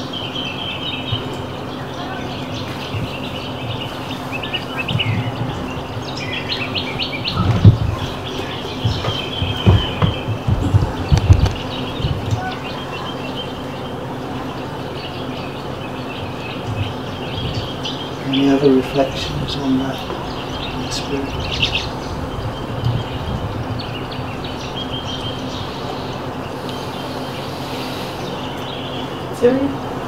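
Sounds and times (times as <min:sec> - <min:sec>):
birds chirping: 0:00.0 - 0:30.0
low bumps: 0:00.0 - 0:30.0
steady low hum: 0:00.0 - 0:30.0.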